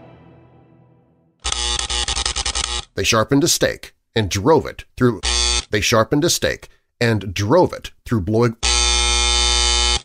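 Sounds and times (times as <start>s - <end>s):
loud electronic buzz: 1.4s - 2.8s, 8.6s - 10.0s.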